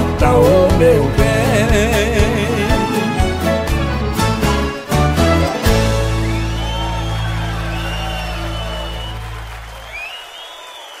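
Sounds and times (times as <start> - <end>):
audience applause and cheering: 2.8 - 11.0.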